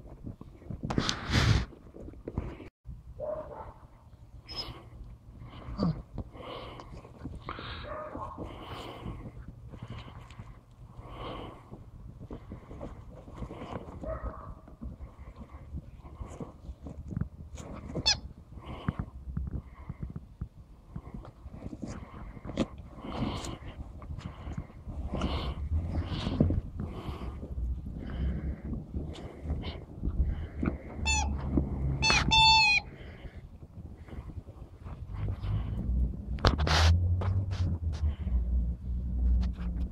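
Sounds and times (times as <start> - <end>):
rubber chicken toy squawking: 31.0 - 31.4, 32.0 - 32.9.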